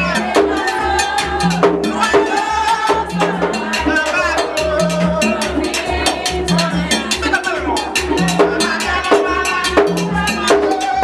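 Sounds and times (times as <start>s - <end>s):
ceremonial drumming: 0.0s - 11.0s
struck bell rhythm: 0.0s - 11.0s.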